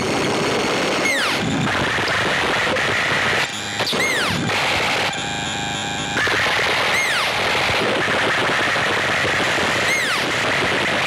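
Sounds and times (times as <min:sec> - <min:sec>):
rapid electronic rattling: 0:00.0 - 0:11.0
short falling synth chirps: 0:03.8 - 0:04.4.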